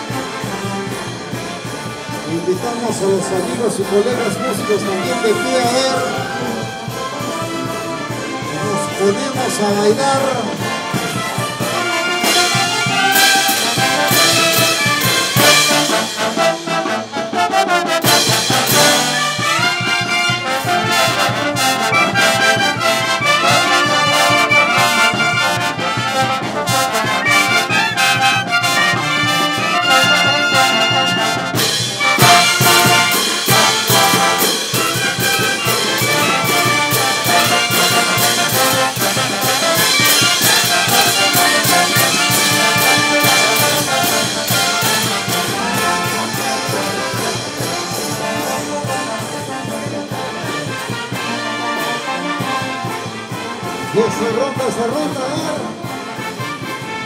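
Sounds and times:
brass band playing: 0.0 - 57.0
cymbals and drums beating: 0.0 - 57.0.

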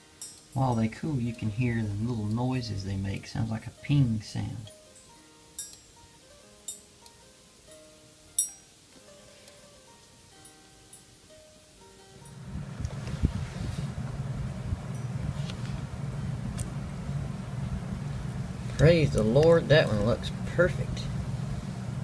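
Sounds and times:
steady low hum: 0.0 - 6.8, 9.6 - 22.0
soft background music: 0.0 - 13.9
metallic pings of cooling spoons: 0.1 - 1.5, 4.9 - 6.0, 6.6 - 8.7.

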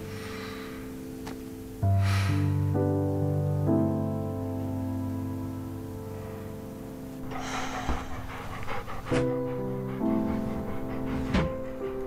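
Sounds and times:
soft piano music: 0.0 - 12.0
dog panting: 7.2 - 12.0.

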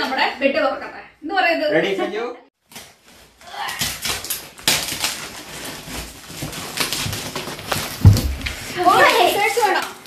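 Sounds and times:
packing tape tearing: 2.6 - 10.0
wrapping paper rustling and ripping: 2.6 - 10.0.

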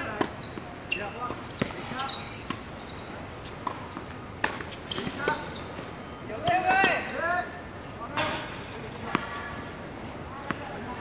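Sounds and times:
tennis ball bouncing on hard court: 0.1 - 2.7, 3.5 - 5.5.

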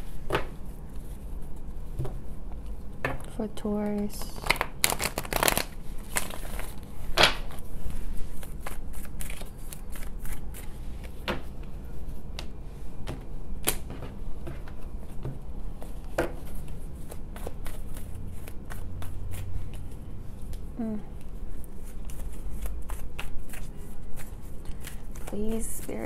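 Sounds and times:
cards being shuffled: 3.8 - 11.4, 13.6 - 20.6, 21.8 - 26.0
cards riffle shuffling: 4.3 - 7.6, 8.3 - 11.2.

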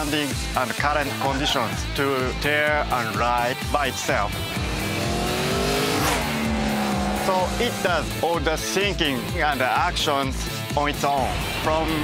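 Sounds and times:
motorcycle engine passing by: 4.4 - 7.9.

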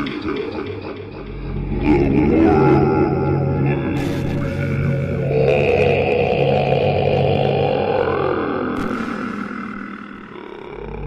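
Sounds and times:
deep rough growl: 1.3 - 8.8, 9.7 - 11.0.

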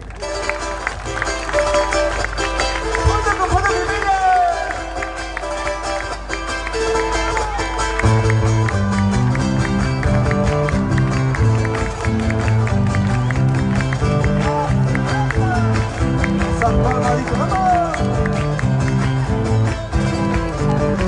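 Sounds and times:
deep bass notes: 8.0 - 21.0.

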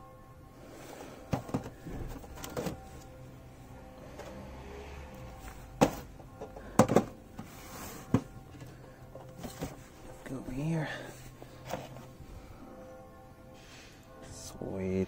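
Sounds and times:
faint background music: 0.0 - 15.0
boxed model knocking on shelf: 6.8 - 7.2.

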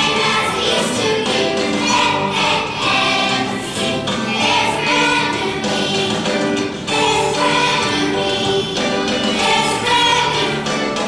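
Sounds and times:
youth choir singing: 0.0 - 11.0.

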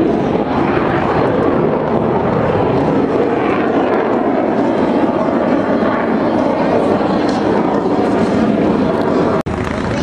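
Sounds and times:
jet engines roaring overhead: 0.0 - 10.0.

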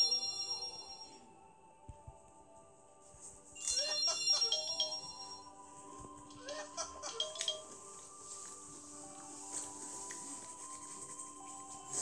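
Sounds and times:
faint held music tones: 0.0 - 12.0
bright chiming notes: 3.6 - 5.6, 7.1 - 7.8.

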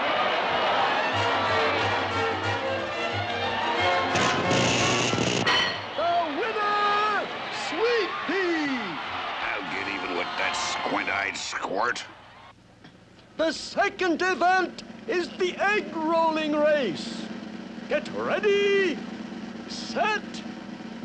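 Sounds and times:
cartoon orchestral music: 0.9 - 4.4
loud noisy sound effect: 4.1 - 5.5.

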